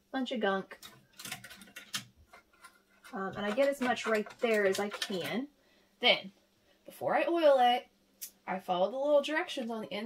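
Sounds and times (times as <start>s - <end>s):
brush scrubbing metal hook: 1.8s - 5.4s.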